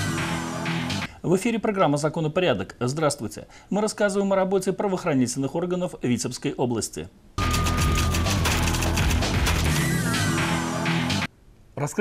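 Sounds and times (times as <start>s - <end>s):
tv theme music: 0.0s - 1.1s, 7.4s - 11.3s
rapid sharp cracks: 7.4s - 9.7s.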